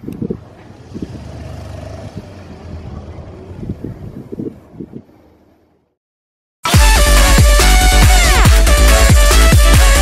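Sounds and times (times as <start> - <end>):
wind on microphone: 0.0 - 5.4.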